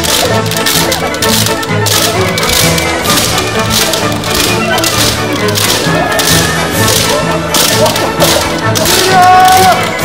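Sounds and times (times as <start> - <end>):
background music: 0.0 - 10.0
bamboo swords clacking: 0.0 - 10.0.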